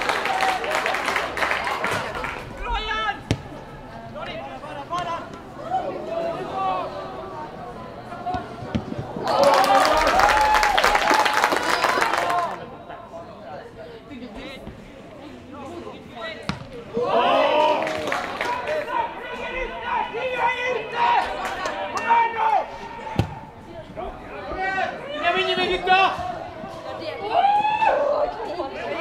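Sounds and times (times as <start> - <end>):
players shouting: 0.0 - 12.7, 16.7 - 29.0
football kick thud: 3.2 - 3.5, 23.2 - 23.4
loud shouting: 16.9 - 23.5, 24.3 - 29.0.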